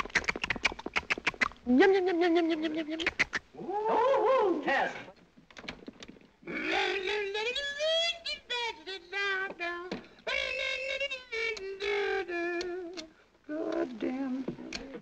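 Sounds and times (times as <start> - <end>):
person singing wordlessly: 1.7 - 4.7, 6.4 - 15.0.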